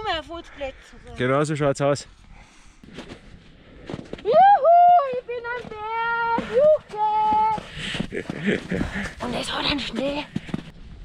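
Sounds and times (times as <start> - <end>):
woman crying out with joy: 4.3 - 5.2.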